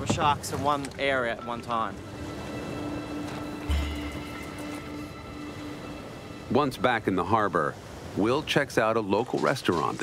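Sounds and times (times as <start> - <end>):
background music held note: 1.2 - 7.7.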